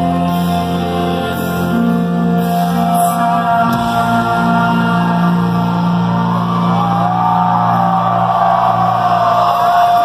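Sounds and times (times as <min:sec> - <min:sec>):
live pop-punk band: 0:00.0 - 0:10.0.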